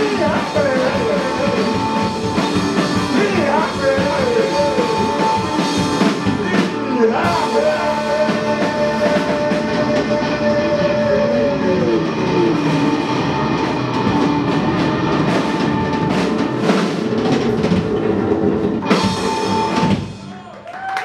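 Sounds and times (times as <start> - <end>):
drums and cymbals crashing: 0.0 - 20.3
bass guitar: 0.0 - 20.5.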